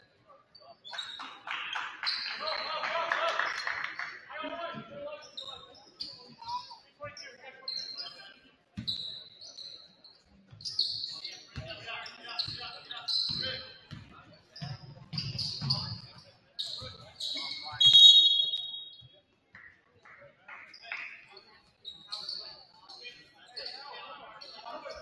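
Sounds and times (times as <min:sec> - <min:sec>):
sneakers squeaking on hardwood: 0:08.8 - 0:19.1, 0:21.7 - 0:23.8.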